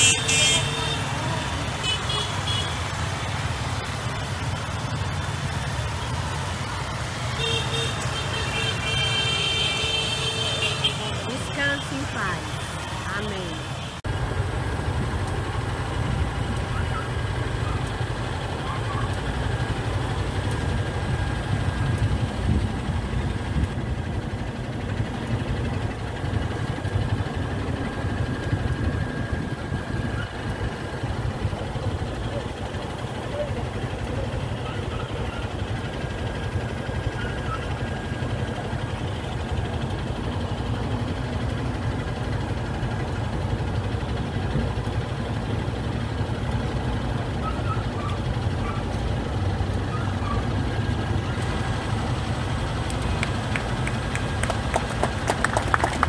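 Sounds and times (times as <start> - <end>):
motorcycle engines idling: 0.0 - 56.0.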